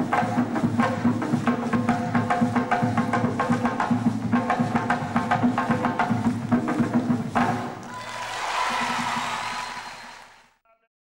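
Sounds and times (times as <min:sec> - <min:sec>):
applause: 0:07.5 - 0:10.6.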